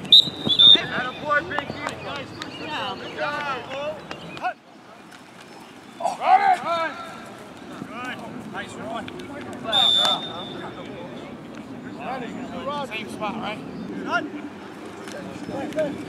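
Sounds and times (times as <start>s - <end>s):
referee's whistle blowing: 0.1s - 0.9s, 9.7s - 10.7s
players shouting: 9.6s - 10.9s.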